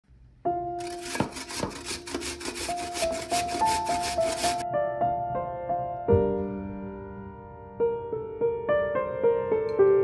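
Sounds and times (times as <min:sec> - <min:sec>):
soft piano music: 0:00.4 - 0:10.0
potato being grated: 0:00.8 - 0:04.6.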